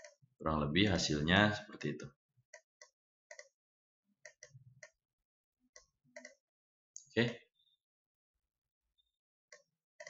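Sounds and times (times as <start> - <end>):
computer mouse clicking: 2.5 - 3.6, 4.2 - 5.0, 5.8 - 6.4, 9.5 - 9.7.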